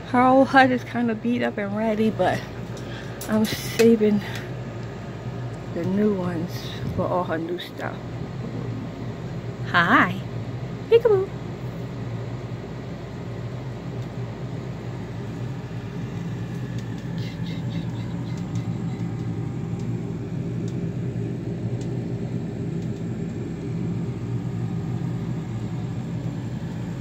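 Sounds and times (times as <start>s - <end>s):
low mechanical hum: 0.0s - 27.0s.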